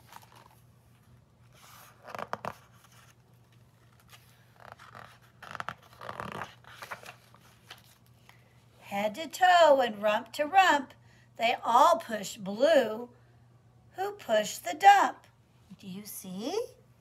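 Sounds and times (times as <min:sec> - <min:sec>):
book pages turning: 0:00.0 - 0:08.4.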